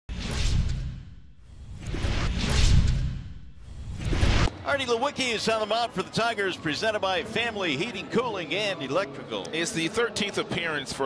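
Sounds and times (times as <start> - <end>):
deep rumble: 0.1 - 4.5
whoosh sound effects: 0.1 - 4.5.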